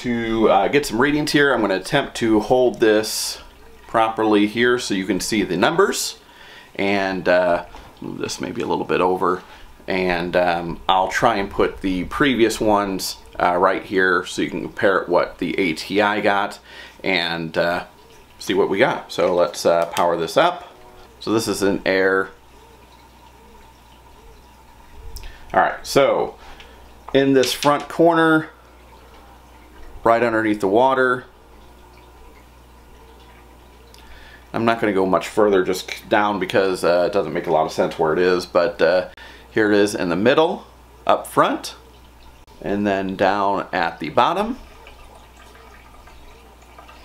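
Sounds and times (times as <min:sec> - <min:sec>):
aquarium low hum: 0:00.0 - 0:47.0
thin steady whine: 0:00.0 - 0:47.0
water drip-like blips: 0:00.0 - 0:47.0.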